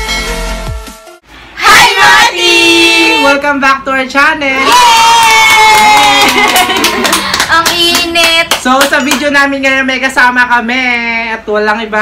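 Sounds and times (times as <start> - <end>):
young people cheering: 4.6 - 7.0.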